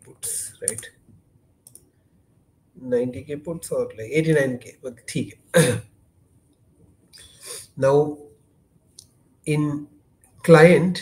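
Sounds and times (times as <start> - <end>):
faint computer clicks: 0.6 - 1.0, 1.6 - 2.0.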